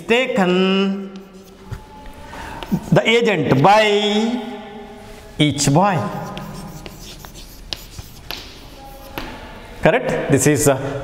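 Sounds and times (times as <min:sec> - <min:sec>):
chalk tapping and scraping on blackboard: 0:01.0 - 0:01.8, 0:02.5 - 0:03.1, 0:06.0 - 0:09.4.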